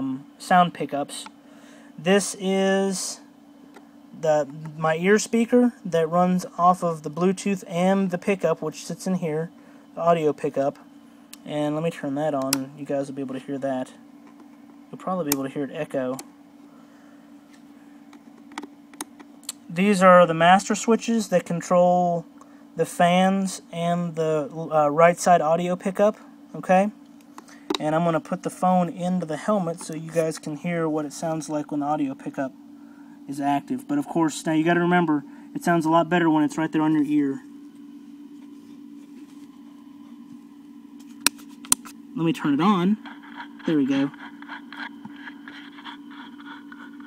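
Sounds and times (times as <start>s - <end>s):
steady low electronic hum: 0.0s - 47.0s.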